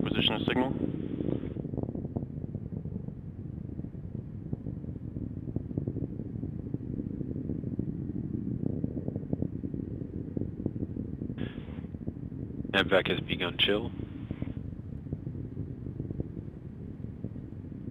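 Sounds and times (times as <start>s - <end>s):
crackling rocket rumble: 0.0s - 17.9s.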